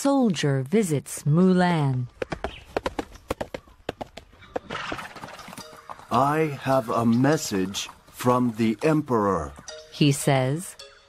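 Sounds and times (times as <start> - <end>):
horse hooves clopping: 1.7 - 10.2.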